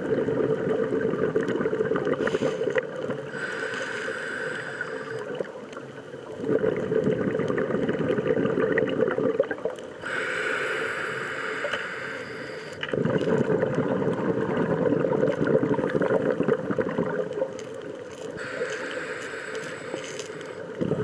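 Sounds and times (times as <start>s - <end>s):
exhaled bubbles gurgling underwater: 0.0s - 21.0s
hissing regulator inhale: 2.1s - 5.5s, 10.0s - 12.9s, 18.3s - 21.0s.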